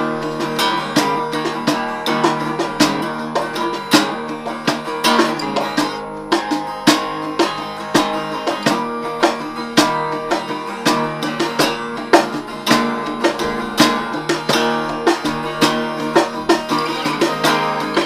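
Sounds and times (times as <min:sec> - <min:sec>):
cajon hand strikes: 0:00.0 - 0:18.0
guitar strumming chords: 0:00.0 - 0:18.0.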